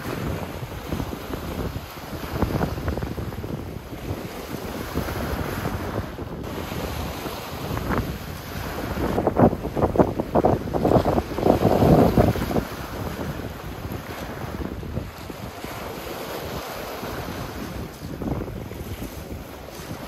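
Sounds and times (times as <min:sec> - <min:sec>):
waves washing over rocks: 0:00.0 - 0:20.0
wind buffeting microphone: 0:00.0 - 0:20.0.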